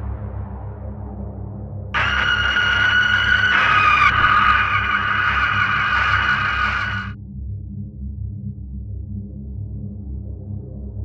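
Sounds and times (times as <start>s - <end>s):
low drone: 2.0s - 7.2s
shrill screech: 2.0s - 7.2s.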